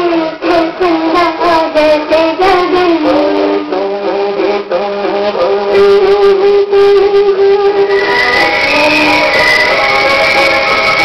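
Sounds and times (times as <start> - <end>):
woman singing: 0.0 - 9.8
backing music: 0.0 - 11.0.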